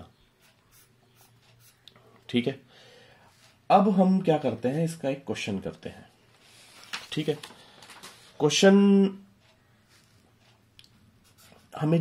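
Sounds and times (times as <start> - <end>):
marker pen scratching paper: 0.4 - 1.8, 11.2 - 11.8.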